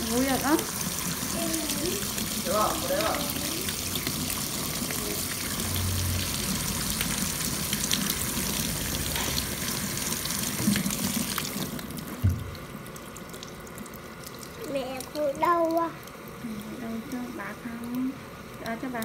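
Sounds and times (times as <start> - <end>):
shower head spraying water: 0.0 - 12.3.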